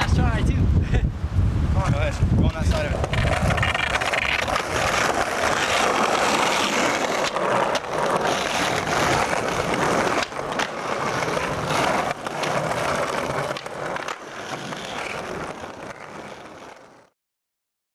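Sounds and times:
skateboard wheels rolling on concrete: 0.0 - 17.1
skateboard clacking on ground: 2.7 - 17.1.

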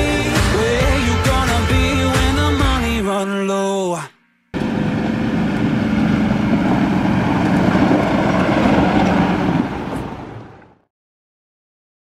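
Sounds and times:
tractor engine running: 4.5 - 10.8.

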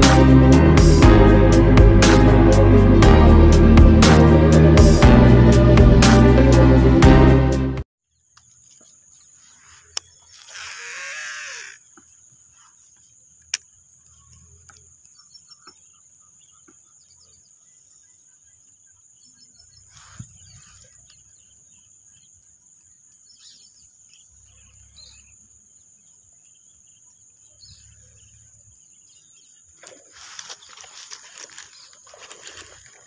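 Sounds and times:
faint animal calls: 9.6 - 12.0
high insect drone: 10.3 - 12.0
rustling and handling noise: 29.8 - 33.0.

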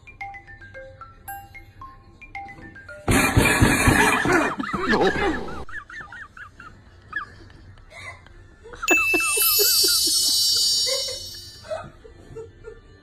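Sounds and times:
bright bell-like ringing: 8.9 - 11.8.

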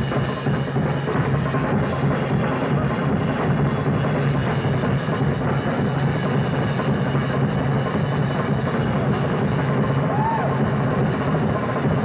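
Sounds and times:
jazz drum kit played fast: 0.0 - 12.0.

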